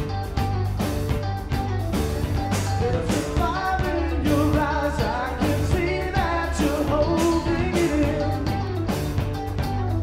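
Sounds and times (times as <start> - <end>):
drum kit: 0.0 - 10.0
electric bass: 0.0 - 10.0
man singing lead: 2.5 - 8.9.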